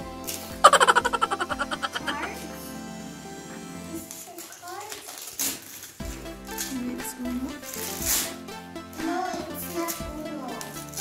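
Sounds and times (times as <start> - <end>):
background music: 0.0 - 4.2, 6.0 - 11.0
gift wrap crinkling: 4.2 - 6.0.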